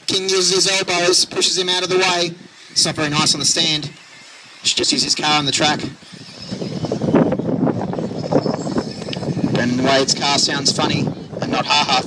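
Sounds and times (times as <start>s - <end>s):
high electric motor whine: 0.0s - 12.0s.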